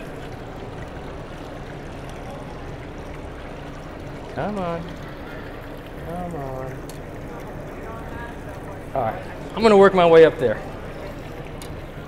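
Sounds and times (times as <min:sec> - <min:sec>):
low steady hum: 0:00.0 - 0:12.0
water trickling in fish tank: 0:00.0 - 0:12.0.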